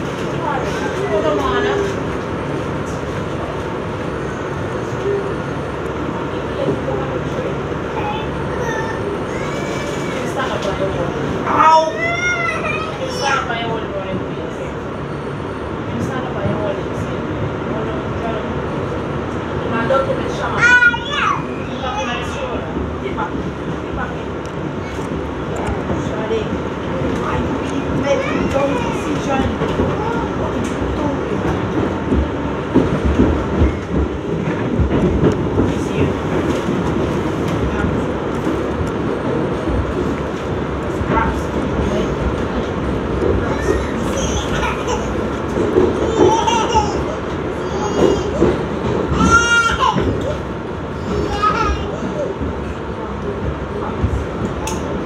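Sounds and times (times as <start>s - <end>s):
subway train wheels on rail: 0.0s - 55.0s.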